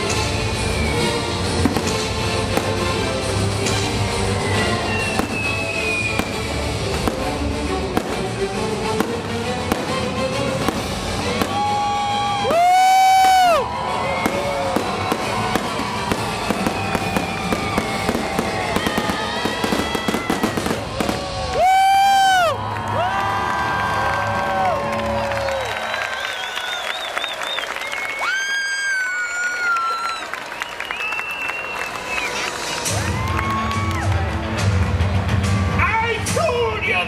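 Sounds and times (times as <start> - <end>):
fireworks bursting and crackling: 0.0 - 22.6
background music: 0.0 - 26.2, 31.8 - 37.0.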